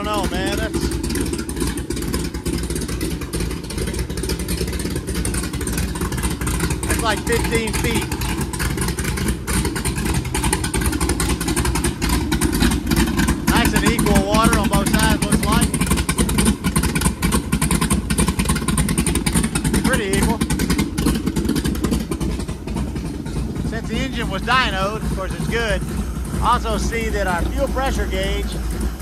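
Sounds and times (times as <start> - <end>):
boat engine running: 0.0 - 29.0.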